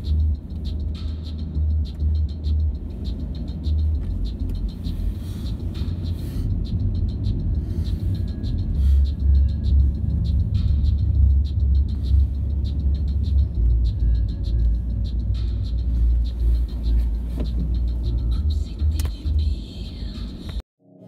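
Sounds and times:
car engine and road rumble: 0:00.0 - 0:20.6.

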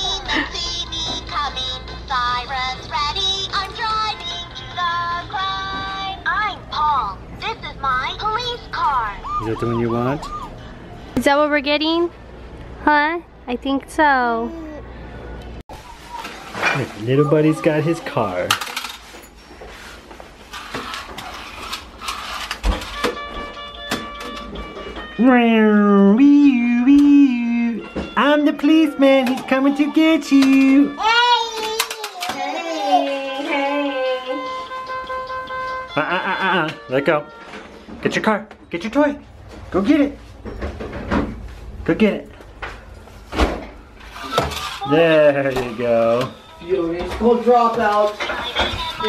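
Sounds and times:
toy car clicking and rattling: 0:20.6 - 0:23.0, 0:31.4 - 0:32.5, 0:44.1 - 0:44.9.

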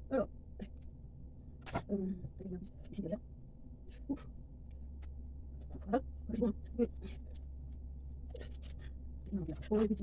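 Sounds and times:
steady low hum: 0:00.0 - 0:10.0
woman's voice: 0:09.2 - 0:10.0.

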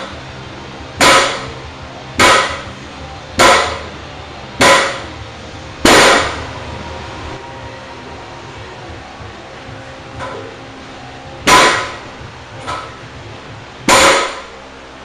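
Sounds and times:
barbell clanging onto platform: 0:02.2 - 0:02.7, 0:03.4 - 0:03.9, 0:04.6 - 0:05.1, 0:11.4 - 0:12.0, 0:12.6 - 0:13.0, 0:13.9 - 0:14.5.

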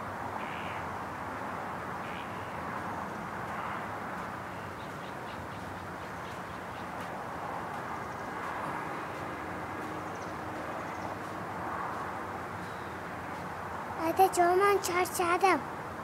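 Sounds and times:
distant traffic: 0:00.0 - 0:16.0.

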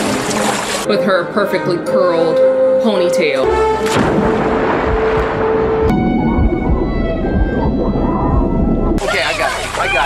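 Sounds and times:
film score sustained notes: 0:00.9 - 0:09.0
muffled underwater rumble: 0:04.2 - 0:10.0.

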